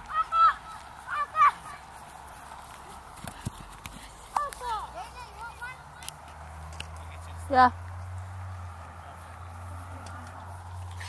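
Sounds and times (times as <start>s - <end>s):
child shouting: 0.0s - 1.9s, 4.4s - 5.9s.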